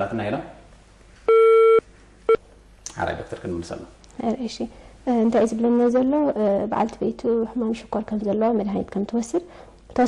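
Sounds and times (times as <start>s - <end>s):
telephone line beeps: 1.3s - 2.4s.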